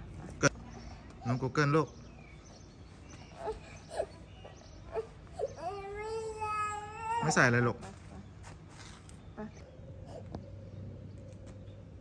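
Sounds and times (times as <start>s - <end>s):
toddler crying: 3.3s - 7.4s.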